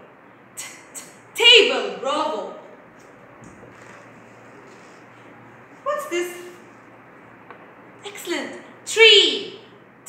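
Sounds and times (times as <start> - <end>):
faint rustling of cards: 2.9 - 5.3
woman asking a question: 5.8 - 6.6.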